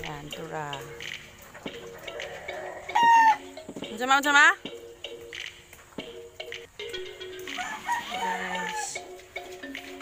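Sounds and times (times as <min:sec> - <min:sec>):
rooster crowing: 0:01.9 - 0:03.4, 0:07.5 - 0:09.0.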